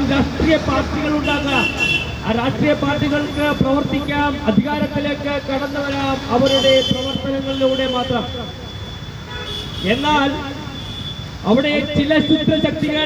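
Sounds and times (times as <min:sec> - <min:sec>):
man speaking through microphone: 0:00.0 - 0:08.7, 0:09.8 - 0:10.8, 0:11.4 - 0:13.0
street traffic: 0:00.0 - 0:13.0
vehicle horn blast: 0:01.2 - 0:02.2, 0:09.3 - 0:10.1.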